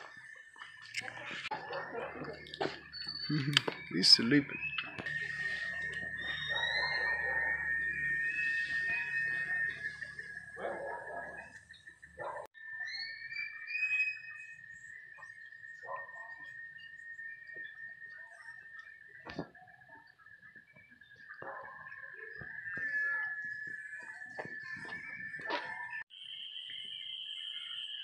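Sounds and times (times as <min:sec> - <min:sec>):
steady high-pitched tone: 0:00.0 - 0:20.2
gliding chirping animal calls: 0:00.2 - 0:19.0.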